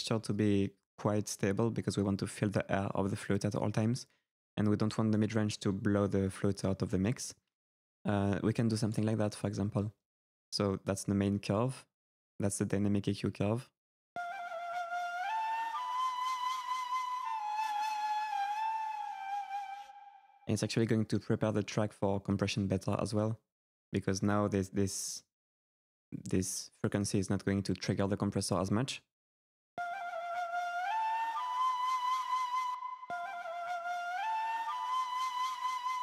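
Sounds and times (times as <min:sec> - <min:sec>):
solo flute playing held notes: 0:14.2 - 0:20.4, 0:29.8 - 0:36.0.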